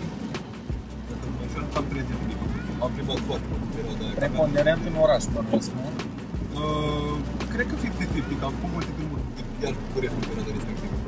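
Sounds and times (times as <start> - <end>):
diesel engine drone: 0.0 - 11.0
road noise: 0.0 - 11.0.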